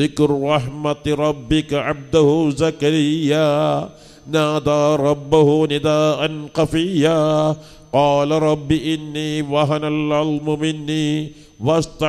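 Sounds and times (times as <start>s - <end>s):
man chanting melodic recitation: 0.0s - 12.0s.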